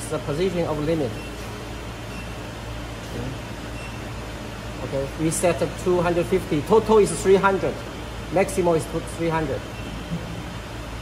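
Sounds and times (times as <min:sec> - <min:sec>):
hydraulic power pack humming: 0:09.1 - 0:11.0.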